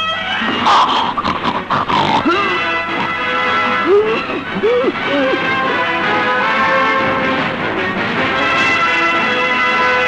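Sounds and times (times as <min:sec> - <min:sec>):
rough animal-like cries: 0:00.0 - 0:05.9
film background music: 0:00.0 - 0:10.0.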